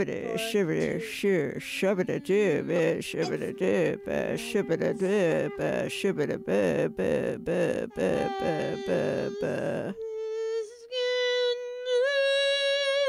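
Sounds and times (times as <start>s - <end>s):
rhythmic groaning voice: 0.0s - 10.9s.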